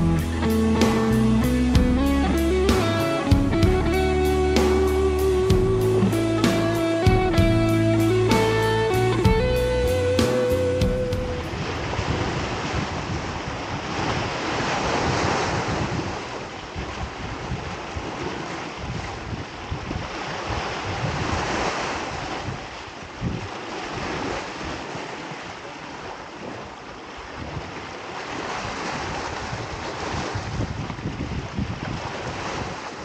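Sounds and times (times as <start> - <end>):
wind buffeting microphone: 0.0 - 25.0, 26.5 - 33.0
small waves washing over rocks: 11.5 - 33.0.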